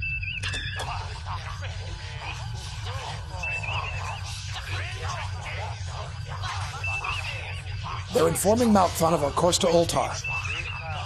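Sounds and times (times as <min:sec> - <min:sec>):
steady low hum: 0:00.0 - 0:11.0
warbling electronic tone: 0:00.0 - 0:11.0
radio voices in alien language: 0:00.4 - 0:11.0.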